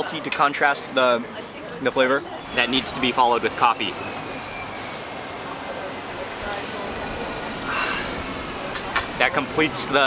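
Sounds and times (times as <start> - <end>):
city traffic hum: 0.0 - 10.0
faint voices of people: 0.0 - 10.0.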